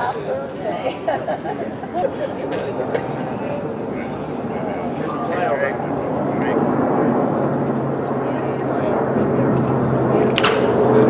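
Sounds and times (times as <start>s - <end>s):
spectators chattering: 0.0s - 11.0s
steady low drone: 1.4s - 11.0s.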